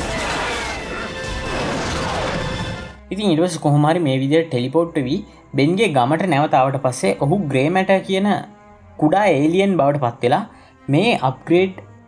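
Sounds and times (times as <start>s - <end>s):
crashing sound effects: 0.0s - 3.0s
action film music: 0.0s - 12.0s.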